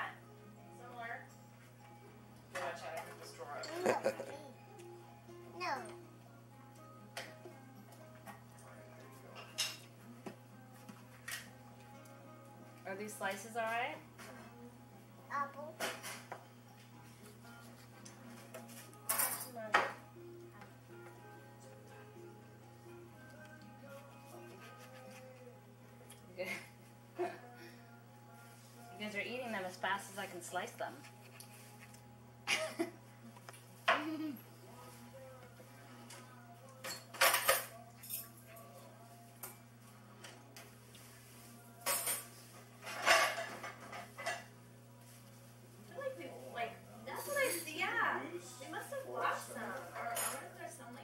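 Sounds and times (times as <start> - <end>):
faint slow background music: 0.0 - 51.0
tableware scraping: 41.8 - 44.5, 49.8 - 50.5
knife and plates clattering: 41.9 - 44.5.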